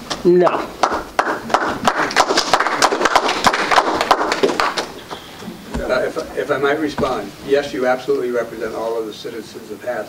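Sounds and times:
small group applauding: 0.4 - 5.5.

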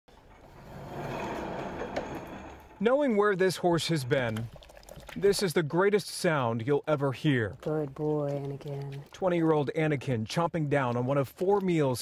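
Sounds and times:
sliding wooden door rumbling: 0.2 - 2.8.

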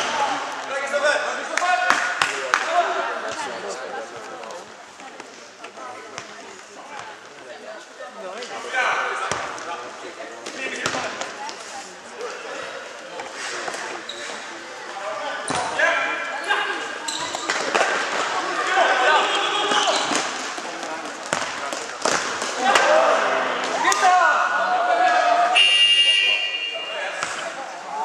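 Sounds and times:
people chattering: 0.0 - 28.0.

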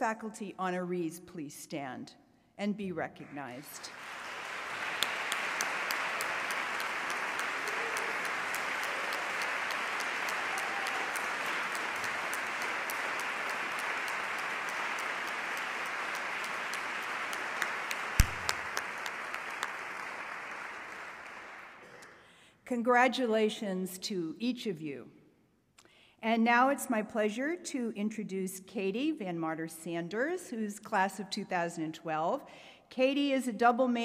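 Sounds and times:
audience applauding: 3.8 - 22.1.

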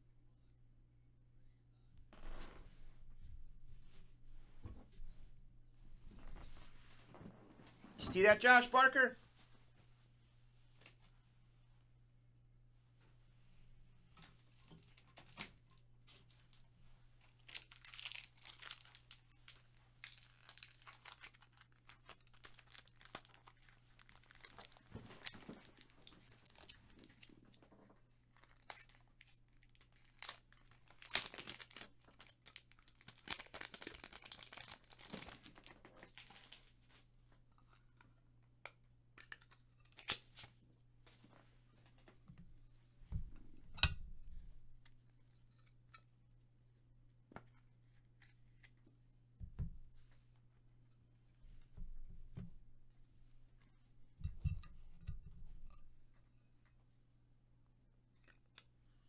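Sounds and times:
wrappers torn and crinkled: 17.3 - 27.6, 28.2 - 36.9, 39.2 - 40.5.

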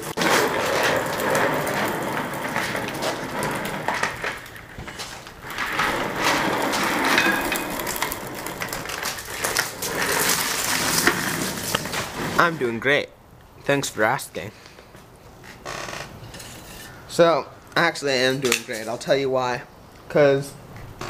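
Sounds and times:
chair casters rolling on concrete: 0.0 - 12.9, 15.4 - 17.0.

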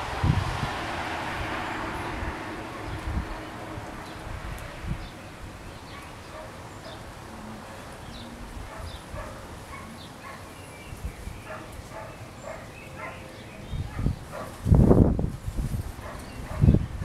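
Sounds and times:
outdoor background noise: 0.0 - 17.0
distant dogs barking: 5.8 - 10.7, 11.3 - 14.7, 16.0 - 17.0.

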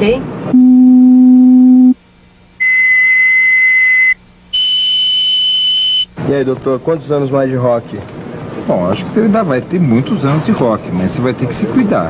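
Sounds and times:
pure tone beeps rising in pitch: 0.5 - 2.0, 2.6 - 6.1.

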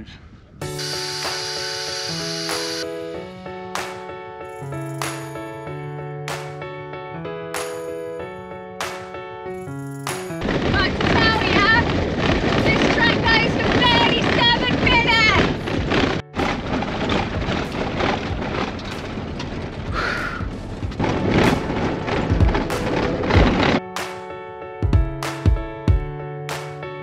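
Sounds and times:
van rattling on dirt road: 10.4 - 23.8.

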